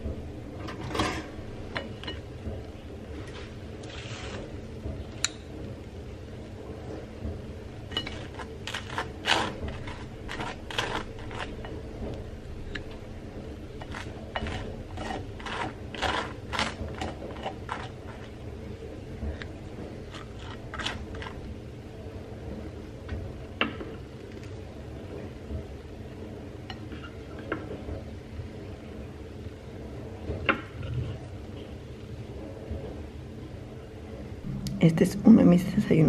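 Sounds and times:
knife scraping on toast: 0:08.0 - 0:11.7, 0:13.8 - 0:18.3.

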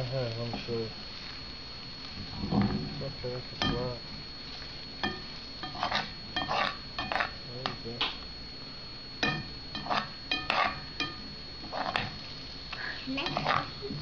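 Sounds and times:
spoon scraping and clinking bowl: 0:05.0 - 0:07.4, 0:09.2 - 0:12.1, 0:13.2 - 0:13.7.

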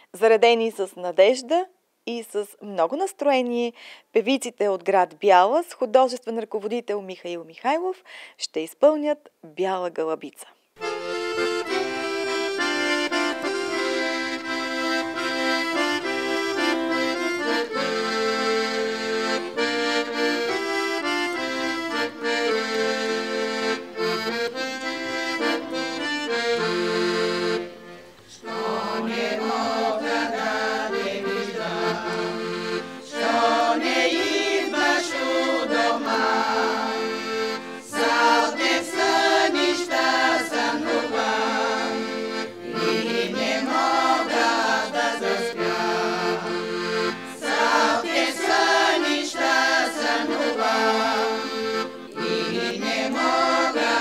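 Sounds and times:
piano accordion playing: 0:10.8 - 0:54.0
women singing: 0:28.3 - 0:46.8, 0:47.4 - 0:51.6, 0:52.2 - 0:54.0.

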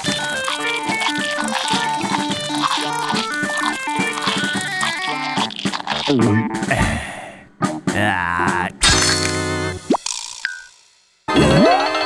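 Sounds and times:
cartoon background music: 0:00.0 - 0:07.0, 0:07.6 - 0:10.0, 0:11.3 - 0:12.0.

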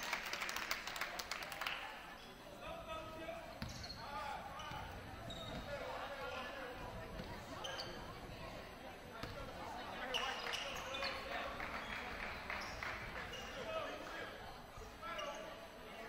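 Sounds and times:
sneakers squeaking: 0:03.4 - 0:08.4, 0:09.2 - 0:14.0, 0:14.8 - 0:15.7.

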